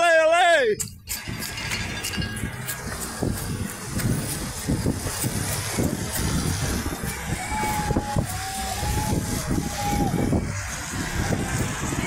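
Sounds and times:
noise of passing race: 0:00.0 - 0:12.0.

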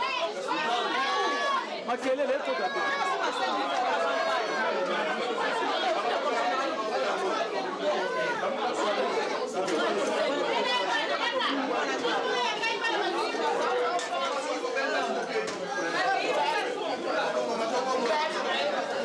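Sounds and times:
overlapping conversation: 0:00.0 - 0:19.0.

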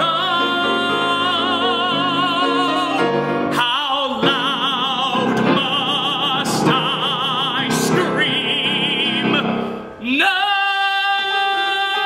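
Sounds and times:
man singing a long held note: 0:00.0 - 0:12.0.

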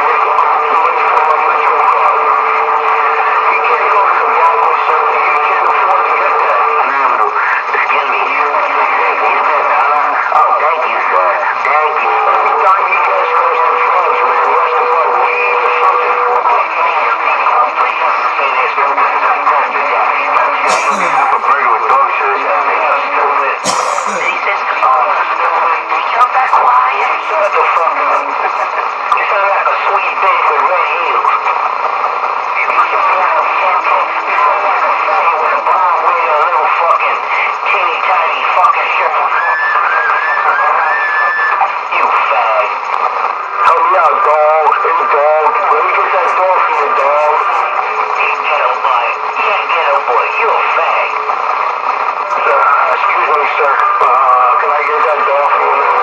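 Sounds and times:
muffled indistinct talk: 0:00.0 - 0:56.0.

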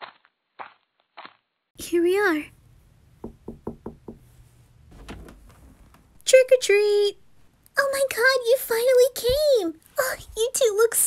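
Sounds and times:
knocking on a door: 0:03.2 - 0:04.3.

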